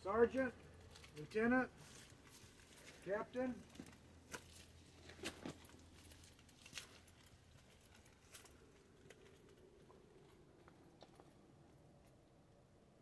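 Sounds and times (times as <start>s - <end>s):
faint clicks and rustles: 0.6s - 12.4s.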